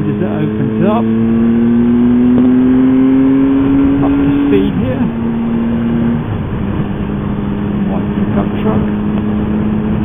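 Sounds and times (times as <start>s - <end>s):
motorcycle engine accelerating: 0.0s - 10.0s.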